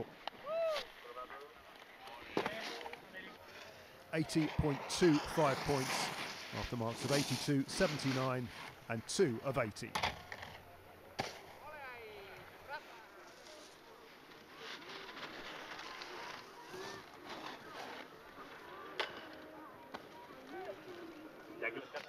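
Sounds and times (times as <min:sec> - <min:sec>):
snowboard scraping over snow: 0:02.2 - 0:10.6, 0:11.2 - 0:21.8.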